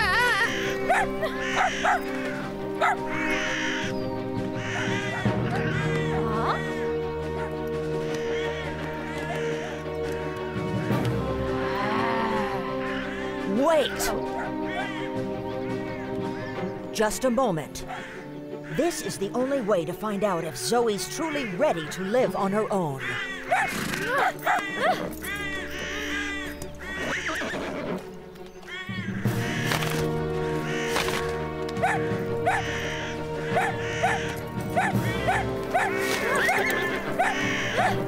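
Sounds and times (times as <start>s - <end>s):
cartoon animal yelp: 0.0s - 2.0s, 33.5s - 38.0s
crows cawing: 0.0s - 16.9s, 17.7s - 38.0s
background music with held chords: 0.0s - 38.0s
cartoon horse whinnying: 23.4s - 28.1s, 31.8s - 38.0s.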